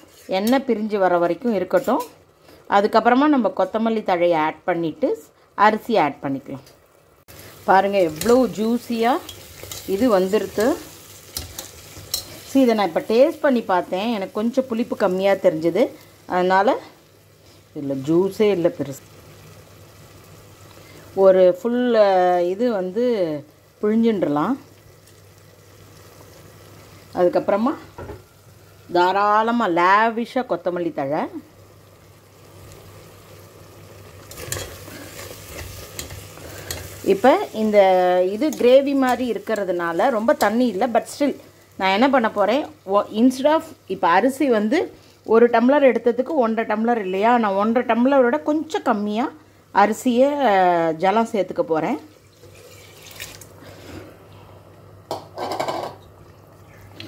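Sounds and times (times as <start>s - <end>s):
gravy sizzling: 0.0s - 57.0s
spoon scraping and clinking pot: 34.3s - 36.9s
rice pouring into gravy: 52.3s - 53.5s.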